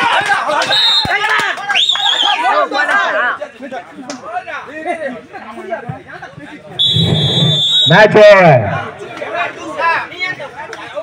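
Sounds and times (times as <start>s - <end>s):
crowd voices: 0.0s - 11.0s
referee's whistle blast: 0.6s - 1.2s, 6.8s - 8.1s.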